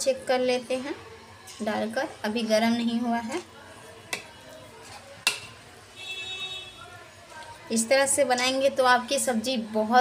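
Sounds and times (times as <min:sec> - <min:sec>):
utensil clinking on metal pan: 0:05.2 - 0:05.6.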